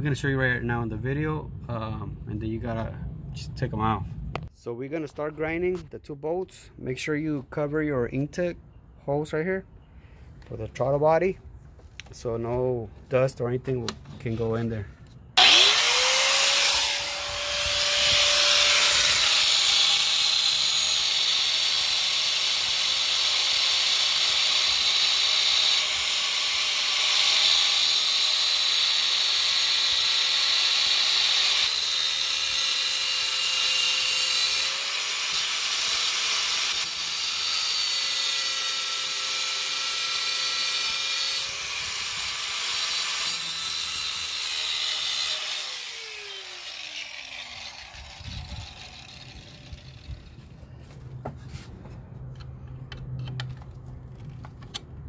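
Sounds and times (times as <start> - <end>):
angle grinder whining: 15.4 - 50.5.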